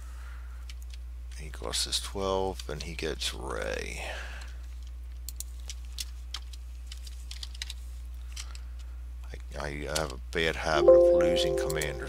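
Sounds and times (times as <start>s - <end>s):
keyboard keys tapping: 10.8s - 12.0s.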